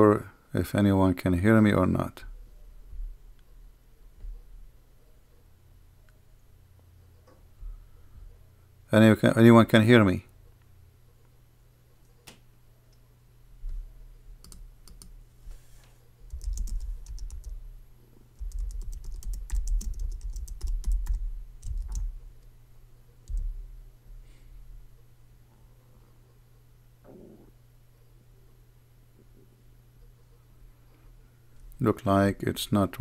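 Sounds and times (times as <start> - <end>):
faint steady hum: 0.0 - 33.0
keyboard typing: 14.4 - 15.2, 16.2 - 17.6, 18.4 - 22.2, 23.2 - 23.5.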